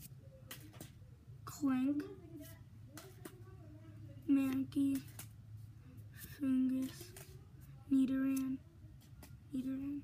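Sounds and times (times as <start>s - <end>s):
trading cards being flipped: 4.5s - 5.4s, 6.2s - 7.4s.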